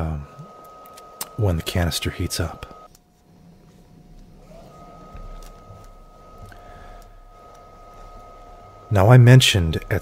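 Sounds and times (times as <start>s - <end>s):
low hum: 0.0s - 10.0s
welding arc whine: 0.0s - 10.0s.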